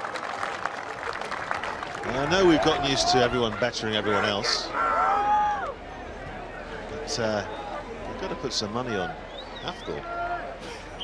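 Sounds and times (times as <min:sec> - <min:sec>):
crowd applauding and cheering: 0:00.0 - 0:03.6.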